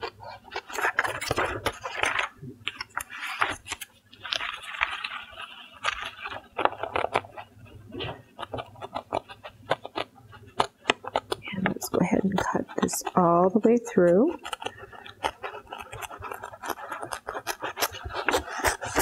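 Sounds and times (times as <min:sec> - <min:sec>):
paper rustling and crinkling: 0:00.0 - 0:19.0
scissors snipping paper: 0:08.3 - 0:19.0.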